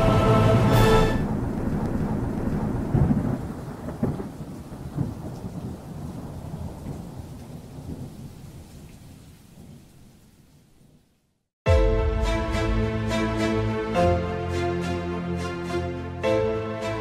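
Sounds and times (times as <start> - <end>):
rumbling thunder: 0.0 - 8.8
rain hiss: 0.0 - 11.3.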